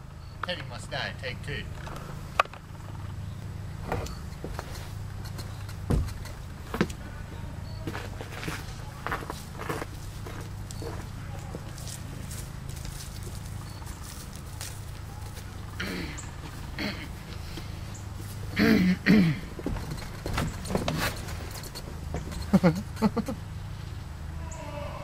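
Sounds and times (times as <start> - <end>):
steady low hum: 0.0 - 25.0
sharp clicks and knocks: 3.9 - 7.0
footsteps on grass and dry leaves: 7.8 - 18.6.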